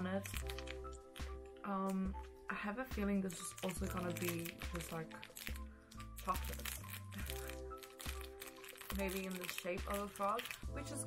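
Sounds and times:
wrapper crinkling: 0:00.0 - 0:01.6, 0:03.1 - 0:11.0
background music: 0:00.0 - 0:11.0.

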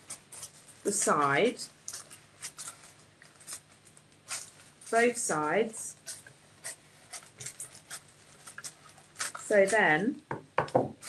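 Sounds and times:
scissors cutting paper: 0:05.9 - 0:10.0.

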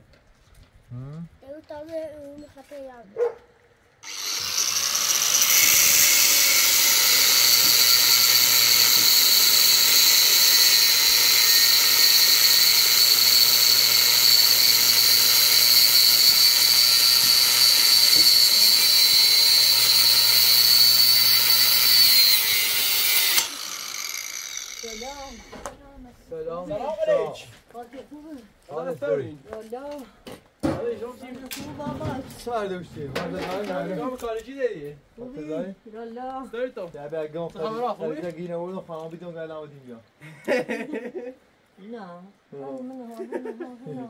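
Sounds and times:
angle grinder cutting metal: 0:04.0 - 0:25.8.

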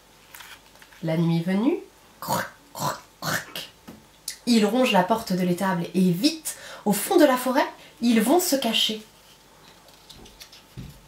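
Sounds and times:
woman saying rasping syllables: 0:01.0 - 0:09.1.

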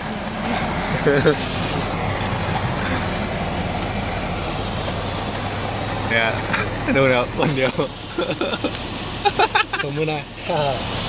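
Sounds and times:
road and engine noise in van: 0:00.0 - 0:11.0.

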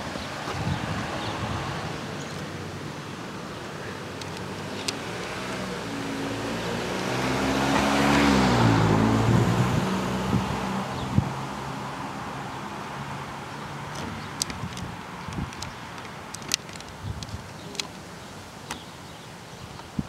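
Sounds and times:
car driving past: 0:05.0 - 0:11.9.

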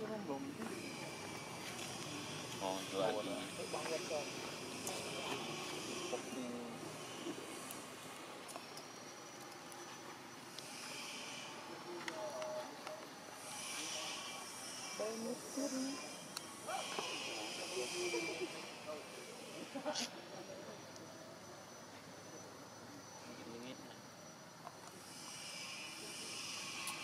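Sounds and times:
outdoor background hiss: 0:00.0 - 0:27.0
faint human voices: 0:11.5 - 0:24.0.

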